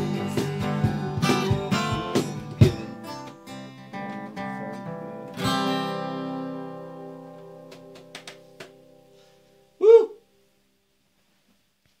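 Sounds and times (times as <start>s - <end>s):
acoustic guitar chord ringing: 0.0s - 9.8s
loud cry: 9.8s - 10.2s.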